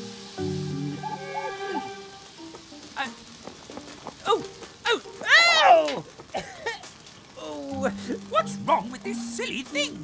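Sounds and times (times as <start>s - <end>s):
food sizzling on a grill: 0.0s - 10.0s.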